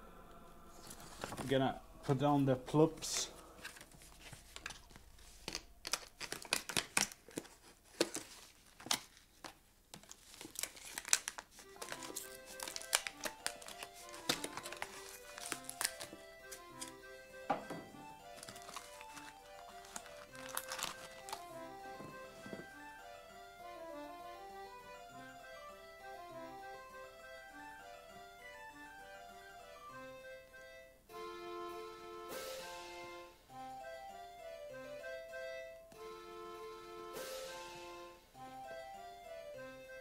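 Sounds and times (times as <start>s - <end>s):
background music: 0.0s - 6.8s, 10.6s - 40.0s
plastic bag crinkling: 3.6s - 17.1s, 18.0s - 22.8s.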